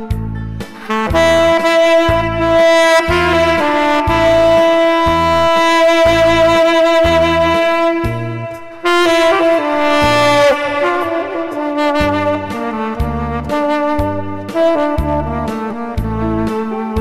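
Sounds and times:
bass and drum backing beat: 0.0 - 17.0
tenor saxophone melody: 0.7 - 17.0.

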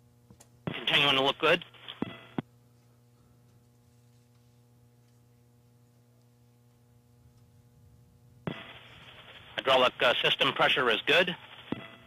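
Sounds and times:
faint electrical hum: 0.0 - 12.0
thin radio hiss: 0.4 - 2.5, 8.4 - 12.0.

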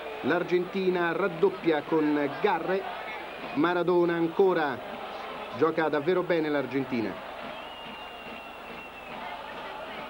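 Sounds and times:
stadium crowd murmur: 0.0 - 10.0.

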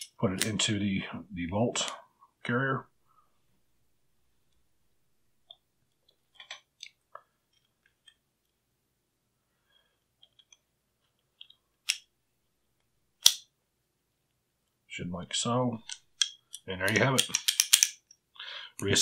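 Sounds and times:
metallic clicks of bolt parts: 15.8 - 18.2.

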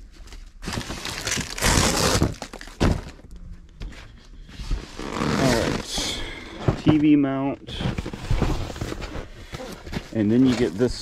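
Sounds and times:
cardboard and plastic wrap rustling: 0.0 - 11.0.

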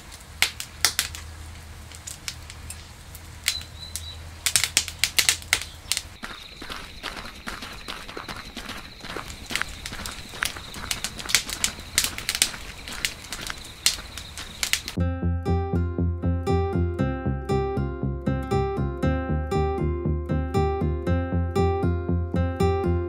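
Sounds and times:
sharp fire pops: 0.0 - 6.2, 9.6 - 15.0
wood fire crackling: 0.0 - 15.0.

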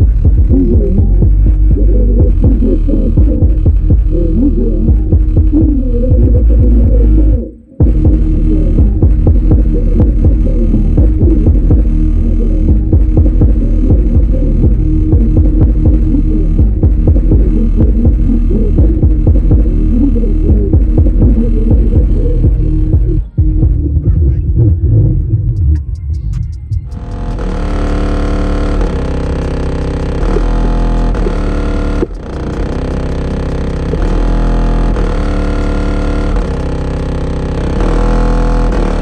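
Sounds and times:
subwoofer playing bass-heavy music: 0.0 - 39.0.

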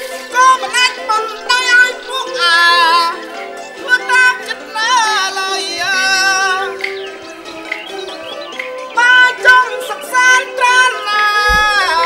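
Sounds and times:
traditional instrumental accompaniment: 0.0 - 12.0
low thump: 11.5 - 12.0.

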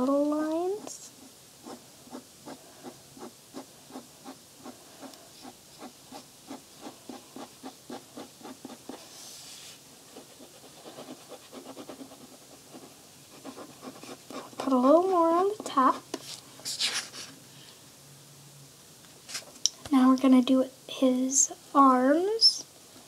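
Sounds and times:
pen scratching on paper: 1.6 - 15.6.

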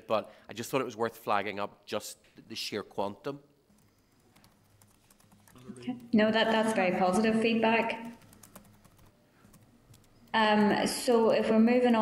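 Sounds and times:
typing on laptop keyboard: 3.7 - 6.2, 8.0 - 10.4.

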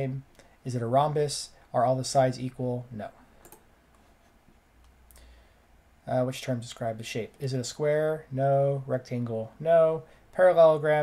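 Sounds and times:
low steady hiss: 0.0 - 11.0.

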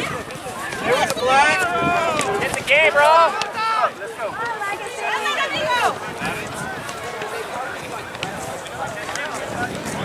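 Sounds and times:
loud shout: 0.8 - 4.0.

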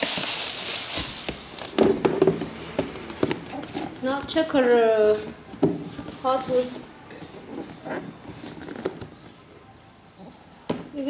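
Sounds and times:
plastic wrapping rustling: 0.0 - 2.0.

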